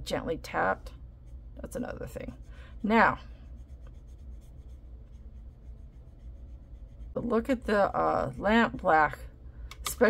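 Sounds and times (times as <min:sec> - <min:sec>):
steady low hum: 0:00.0 - 0:10.0
paintbrush brushing on paper: 0:01.1 - 0:08.8.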